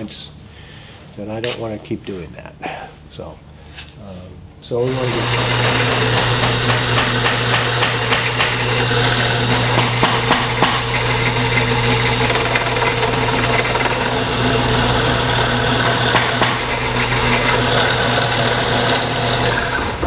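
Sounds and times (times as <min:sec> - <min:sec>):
bandsaw motor hum: 0:04.7 - 0:20.0
bandsaw blade cutting wood: 0:04.9 - 0:20.0.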